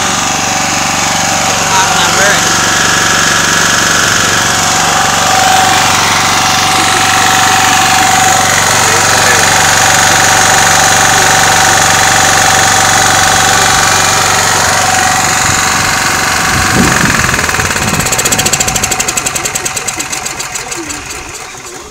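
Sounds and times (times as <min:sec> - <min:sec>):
high steady whine: 0:00.0 - 0:20.2
gasoline engine running hard: 0:00.0 - 0:21.9.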